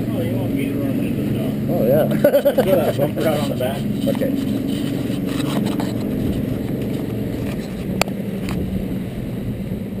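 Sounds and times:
outboard motor running: 0.0s - 10.0s
water rushing along hull: 0.0s - 10.0s.

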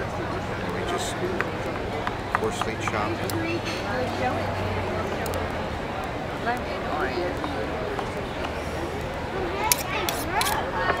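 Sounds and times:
knife scraping in stone mortar: 9.7s - 10.6s.

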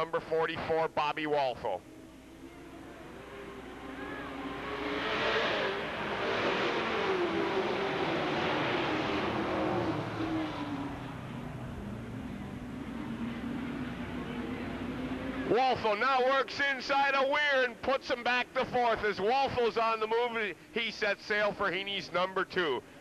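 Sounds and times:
stock car engines racing past: 1.8s - 18.5s.

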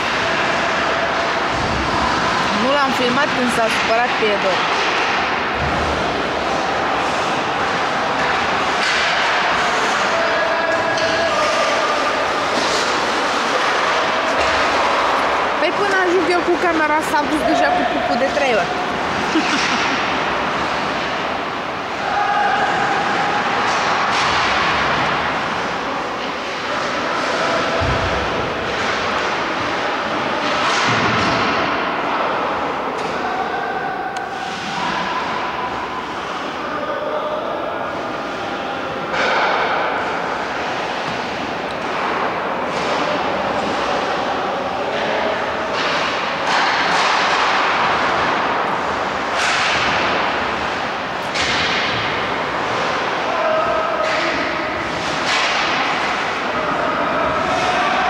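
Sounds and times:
skates scraping ice: 0.0s - 31.6s
sticks and puck clacking: 0.0s - 36.7s, 37.9s - 58.0s.

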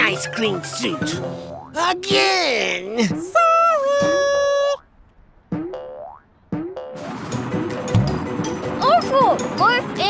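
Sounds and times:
cartoon boing: 5.6s - 7.0s.

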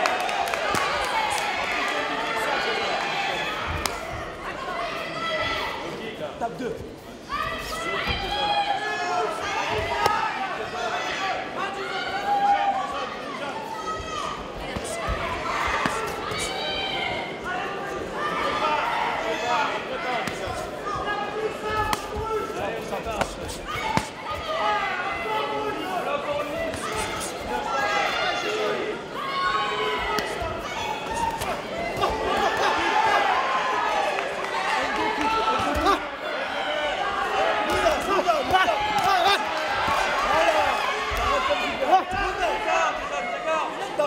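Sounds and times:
crowd shouting: 7.3s - 44.0s.

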